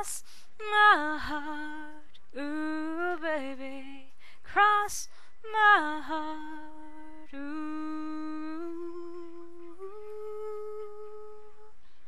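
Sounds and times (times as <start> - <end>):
woman humming: 7.4 - 11.8.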